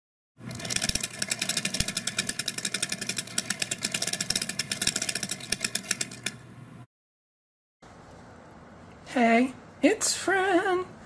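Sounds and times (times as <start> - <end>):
rapid clatter of card clicks: 0.5 - 6.4.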